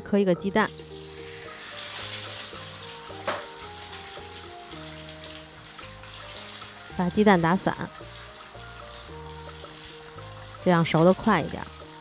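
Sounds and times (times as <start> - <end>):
food sizzling in oil: 0.0 - 12.0
loud crackle of frying: 0.7 - 12.0.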